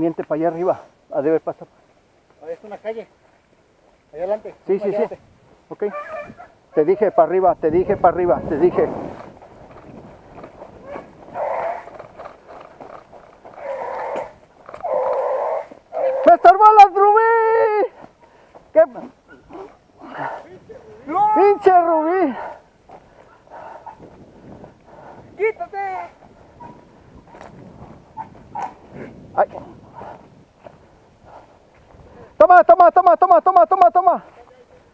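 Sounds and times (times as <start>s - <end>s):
beagles baying: 5.7s - 7.3s, 9.7s - 20.3s, 21.0s - 24.2s, 26.2s - 29.1s.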